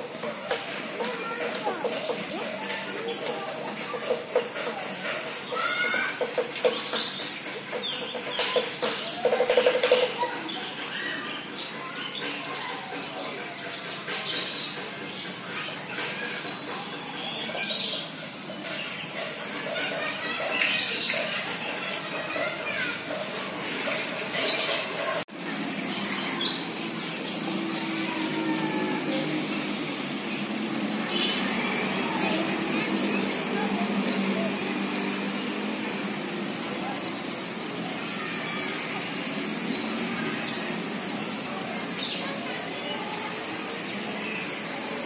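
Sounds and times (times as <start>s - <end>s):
faint background voices: 0.0s - 45.0s.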